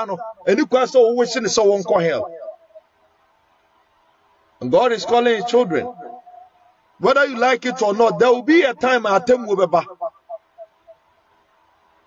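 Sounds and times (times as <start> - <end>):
man preaching: 0.0 - 2.8, 4.6 - 10.6.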